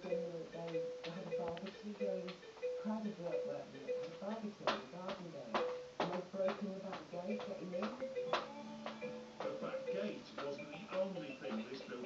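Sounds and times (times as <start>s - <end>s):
person talking: 0.0s - 8.6s, 9.4s - 12.0s
hands knocking plastic toy: 4.0s - 9.6s.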